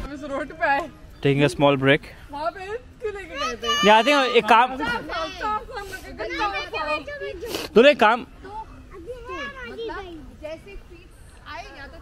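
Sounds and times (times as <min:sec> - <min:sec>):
adults chattering: 0:00.0 - 0:12.0
children talking and calling out: 0:02.7 - 0:12.0.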